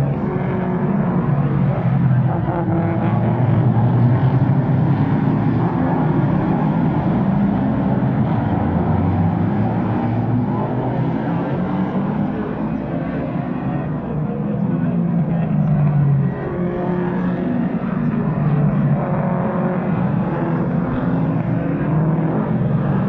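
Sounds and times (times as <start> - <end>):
race car engines passing: 0.0 - 23.0.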